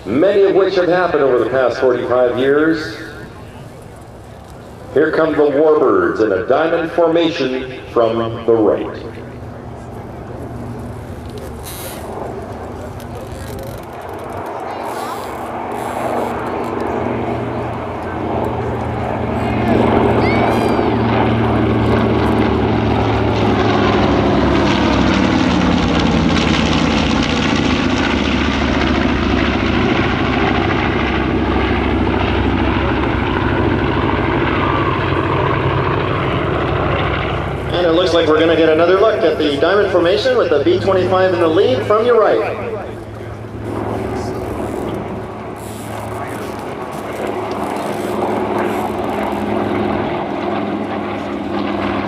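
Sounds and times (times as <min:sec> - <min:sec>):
propeller planes flying past: 0:00.0 - 0:52.0.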